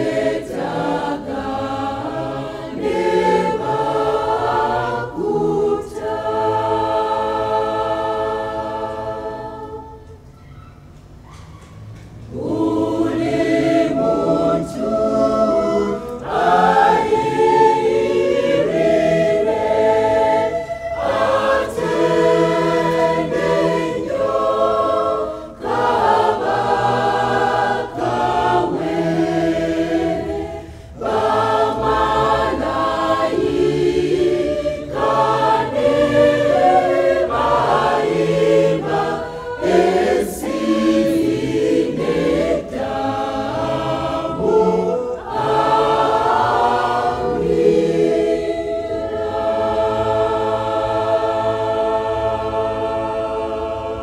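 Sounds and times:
choir singing gospel in harmony: 0.0s - 10.2s, 12.1s - 54.0s.

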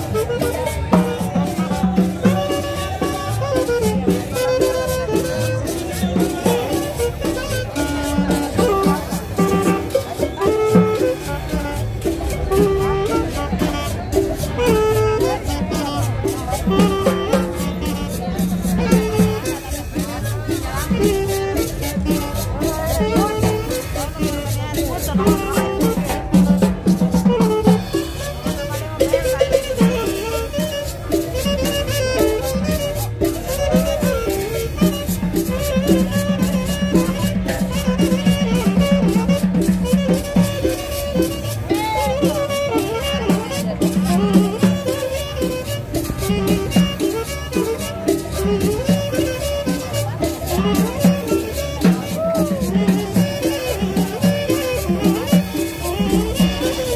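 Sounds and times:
hand drums: 0.0s - 56.9s
saxophone: 0.0s - 56.9s
small guitar: 0.0s - 56.9s.

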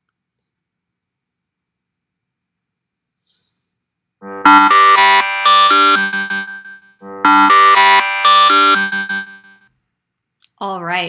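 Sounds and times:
timer alarm melody: 4.2s - 9.6s.

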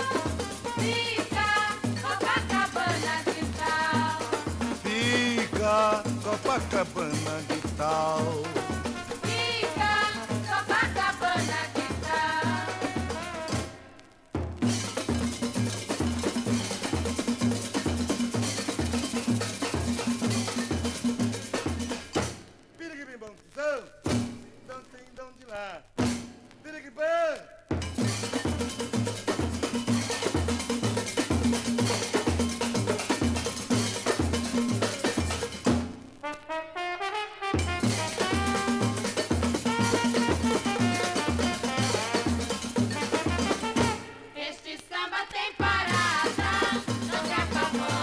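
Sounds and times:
drums: 0.0s - 48.0s
bell-like percussion pattern: 14.8s - 22.0s, 27.8s - 35.7s, 38.4s - 43.9s.

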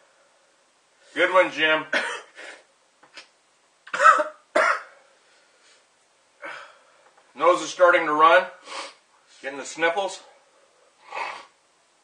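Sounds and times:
man coughing: 1.9s - 2.4s, 3.9s - 5.0s.

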